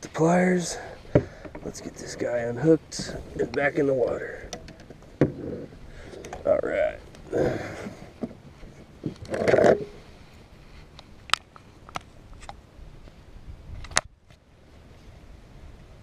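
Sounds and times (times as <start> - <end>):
rustle: 0.0 - 16.0.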